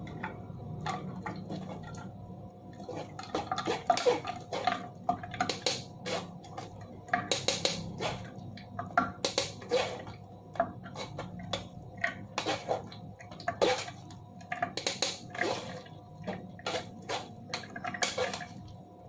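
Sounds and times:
metal spoon scraping mesh strainer: 0:07.3 - 0:08.3, 0:18.0 - 0:18.5.

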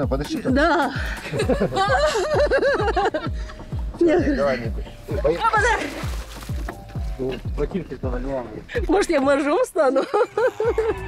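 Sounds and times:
background music with low beat: 0:00.0 - 0:11.0
woman laughing: 0:00.6 - 0:04.5, 0:05.3 - 0:06.0, 0:08.8 - 0:11.0.

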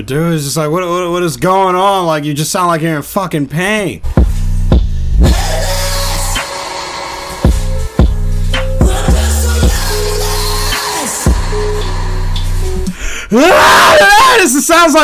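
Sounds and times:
heavy bass with pitch drops: 0:04.1 - 0:12.9
person yelling vocals: 0:13.3 - 0:15.0.

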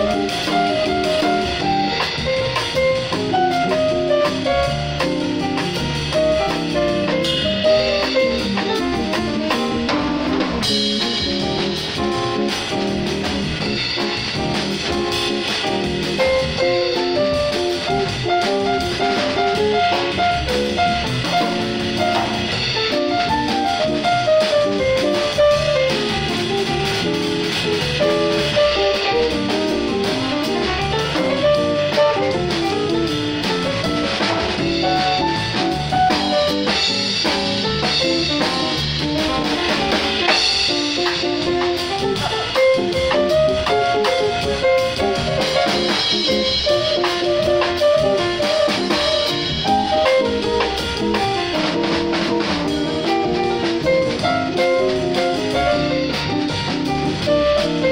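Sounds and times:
drum kit with cymbals: 0:00.0 - 0:57.9
electric keyboard: 0:00.0 - 0:57.9.

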